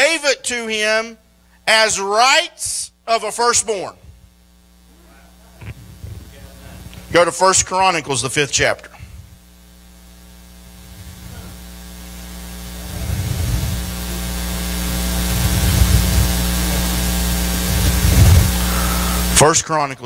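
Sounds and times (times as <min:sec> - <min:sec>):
electrical mains hum with hiss: 0:00.0 - 0:20.0.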